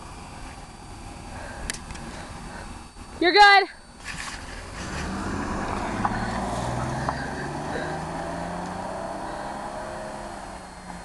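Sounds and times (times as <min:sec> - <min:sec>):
car engine accelerating: 0:04.4 - 0:11.0.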